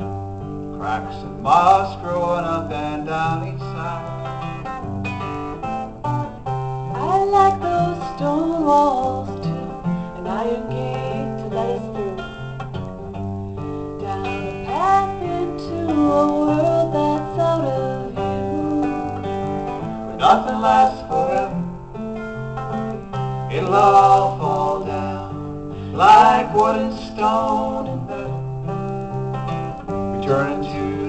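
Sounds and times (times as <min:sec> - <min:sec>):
acoustic guitar playing: 0:00.0 - 0:31.0.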